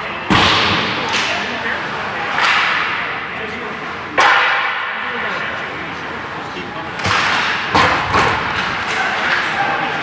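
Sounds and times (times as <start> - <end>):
players hitting rink boards: 0.2 - 3.2, 4.1 - 5.2, 7.0 - 10.0.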